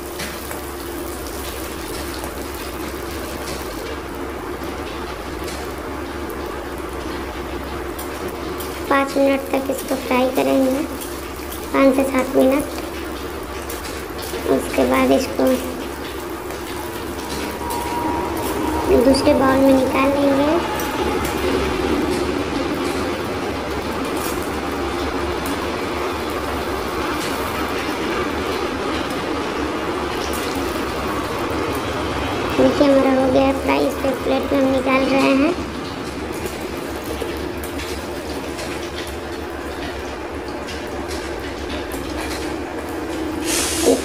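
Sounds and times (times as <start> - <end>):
vegetables sizzling in hot oil: 0.0 - 19.0, 42.8 - 44.0
held pitched hum: 15.8 - 24.1.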